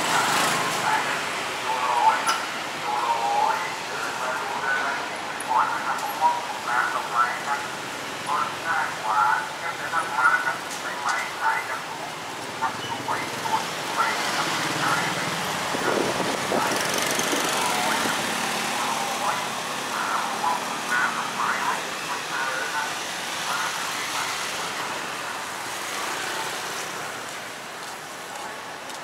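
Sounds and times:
people talking: 0.0s - 25.4s
street traffic: 0.0s - 29.0s
motor scooter passing: 12.4s - 22.2s.

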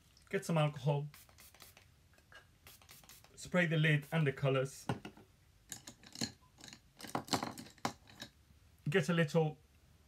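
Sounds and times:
spray bottle spritzing: 1.1s - 1.9s, 2.6s - 3.4s.

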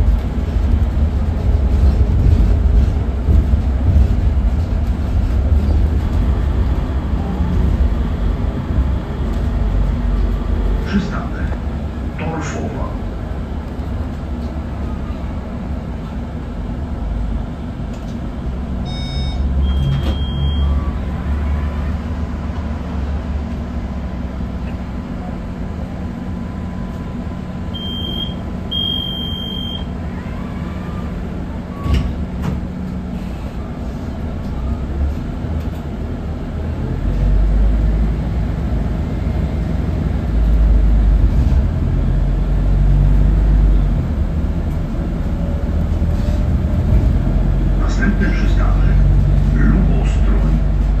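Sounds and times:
bus engine drone and road noise: 0.0s - 51.0s.

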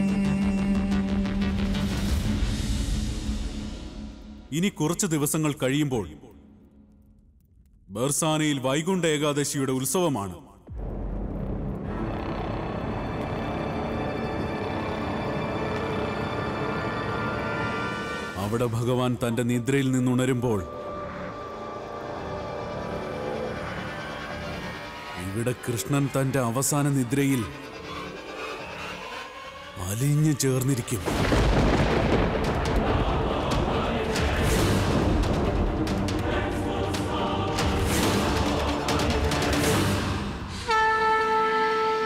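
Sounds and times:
man's voice: 0.0s - 1.9s, 4.5s - 6.4s, 7.9s - 10.7s, 18.3s - 21.1s, 25.2s - 27.7s, 29.8s - 31.4s
dramatic background score drone: 10.6s - 41.2s
conch shell blown: 40.7s - 42.0s.

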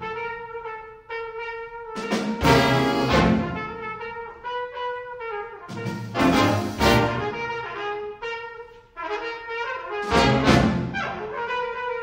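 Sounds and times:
trumpet holding long notes: 0.0s - 12.0s.

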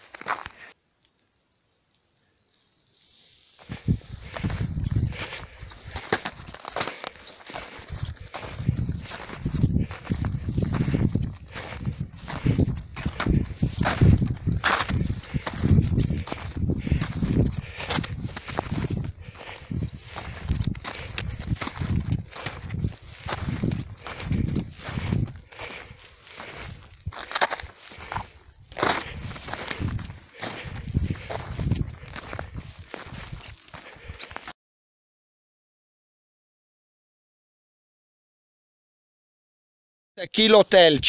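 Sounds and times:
footsteps on snow and grass: 0.0s - 0.7s, 3.0s - 34.5s.

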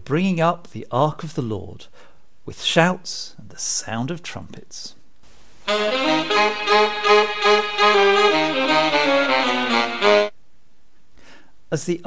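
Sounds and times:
recorded tune played on horns: 5.7s - 10.3s.

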